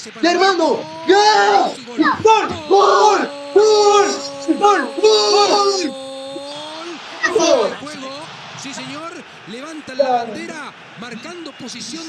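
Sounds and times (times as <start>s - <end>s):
voices speaking: 0.0s - 10.6s
person shouting: 0.3s - 7.8s, 10.0s - 10.5s.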